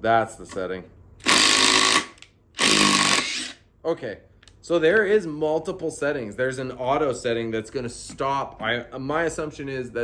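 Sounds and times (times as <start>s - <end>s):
impact driver driving screw: 1.2s - 3.6s.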